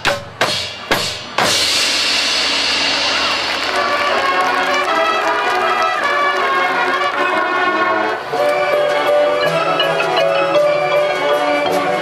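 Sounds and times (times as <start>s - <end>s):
marching band cymbals ringing: 0.0s - 12.0s
brass notes: 1.8s - 12.0s.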